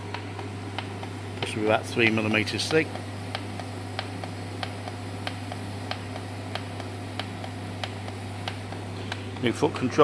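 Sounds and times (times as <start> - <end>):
welding arc humming: 0.0 - 10.0.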